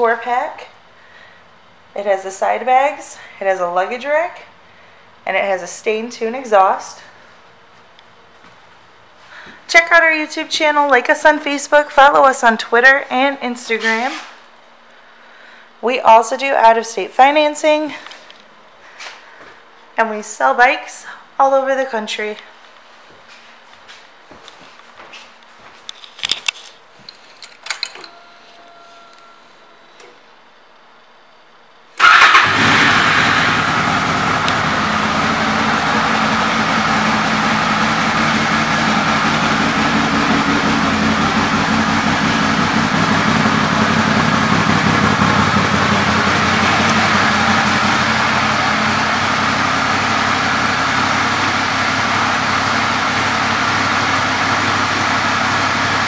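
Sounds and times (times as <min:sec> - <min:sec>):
motorcycle engine starting and idling: 0:32.0 - 0:56.0.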